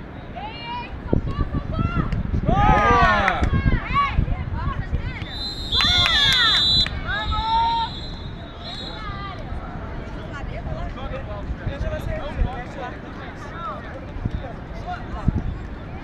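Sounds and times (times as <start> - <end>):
referee's whistle blast: 5.2 - 9.1.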